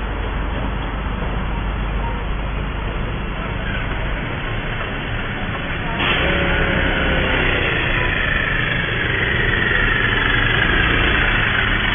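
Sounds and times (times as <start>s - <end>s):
road traffic engines: 0.0s - 11.9s.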